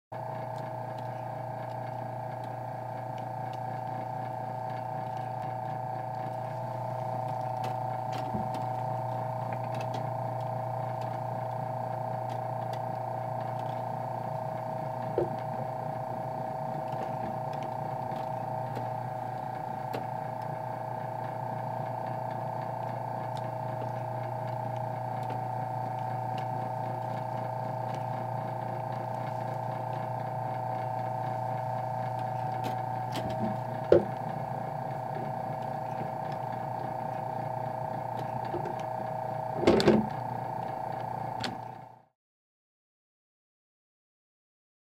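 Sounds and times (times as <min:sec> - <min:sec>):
electric motor humming and whining: 0:00.2 - 0:42.1.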